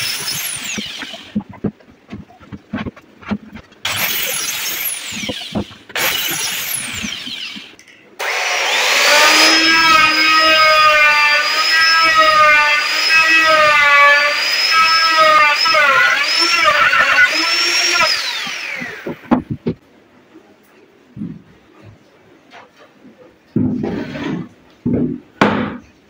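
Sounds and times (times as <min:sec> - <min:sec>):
circular saw cutting wood: 0:00.0 - 0:01.5, 0:02.8 - 0:19.3
router whining into wood: 0:00.0 - 0:01.7, 0:02.4 - 0:19.3.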